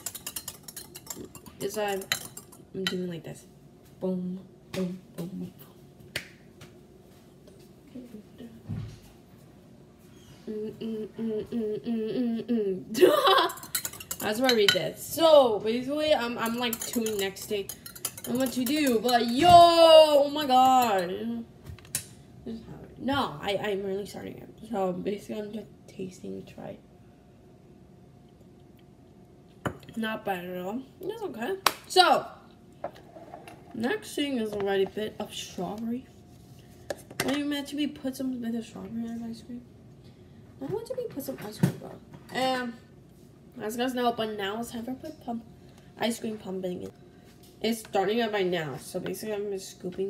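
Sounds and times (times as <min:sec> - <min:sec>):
faint steady hum: 0:00.0 - 0:50.0.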